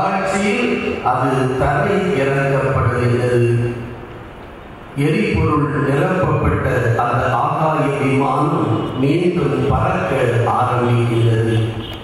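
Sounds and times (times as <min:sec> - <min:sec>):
man chanting: 0:00.0 - 0:03.8, 0:05.0 - 0:11.8.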